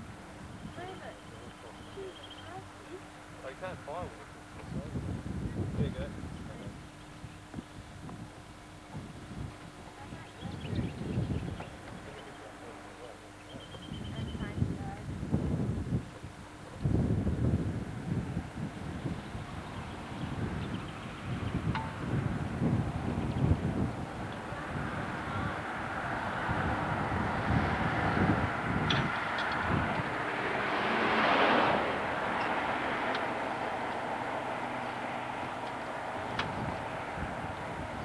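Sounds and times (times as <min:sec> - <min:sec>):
wind buffeting microphone: 0:03.6 - 0:12.4, 0:13.5 - 0:38.0
vehicle passing by: 0:18.8 - 0:38.0.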